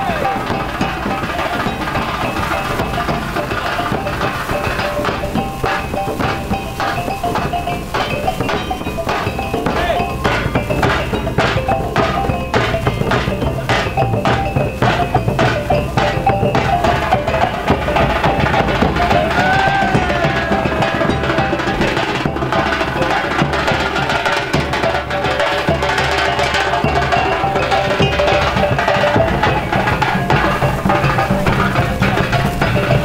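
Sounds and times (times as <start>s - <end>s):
drums beaten with sticks: 0.0s - 33.0s
sustained melodic line: 0.0s - 33.0s.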